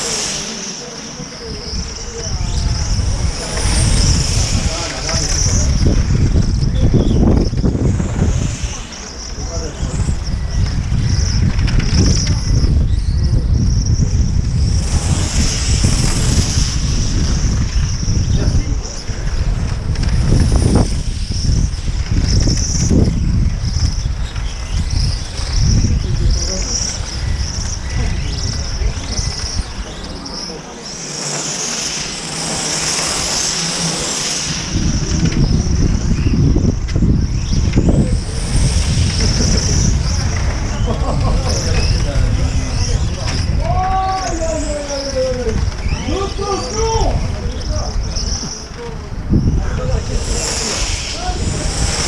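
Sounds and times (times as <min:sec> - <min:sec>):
rc car engine whine: 0:00.0 - 0:52.0
wind rumble on microphone: 0:00.0 - 0:52.0.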